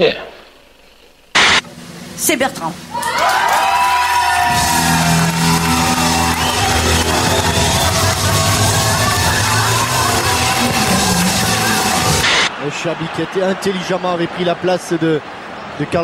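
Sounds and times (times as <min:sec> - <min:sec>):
bass: 0:02.2 - 0:12.5
drums: 0:03.8 - 0:12.5.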